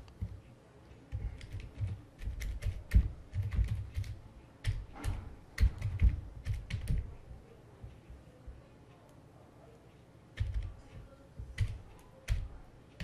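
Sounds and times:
typing on keyboard: 0.0 - 7.4, 10.4 - 13.0.

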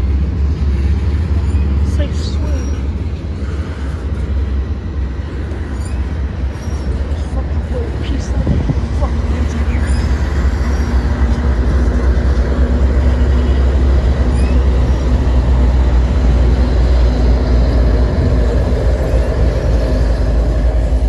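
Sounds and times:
locomotive engine rumble: 0.0 - 21.0.

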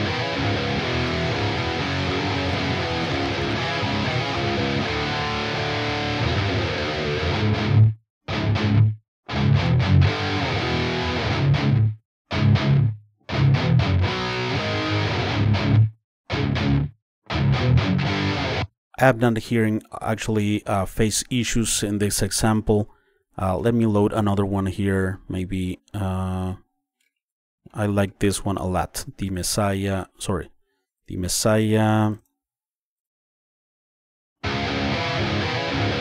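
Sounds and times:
distorted electric guitar: 0.0 - 18.7, 34.4 - 36.0.

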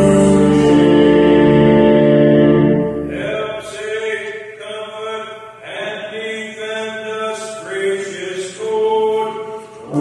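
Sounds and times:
organ chord: 0.0 - 3.6
person chanting: 0.0 - 10.0.

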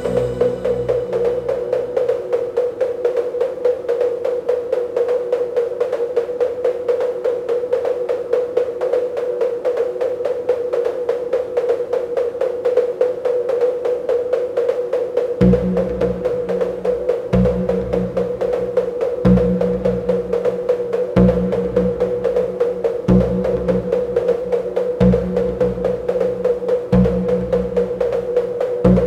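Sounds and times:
held mid-pitched synth tone: 0.0 - 2.0.

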